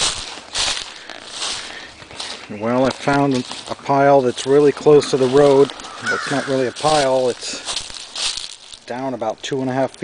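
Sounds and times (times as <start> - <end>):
footsteps crunching dry leaves: 0.0 - 10.0.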